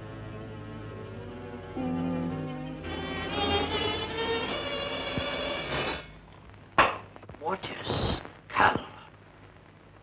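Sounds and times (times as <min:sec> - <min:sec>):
orchestral string music: 0:00.0 - 0:06.1.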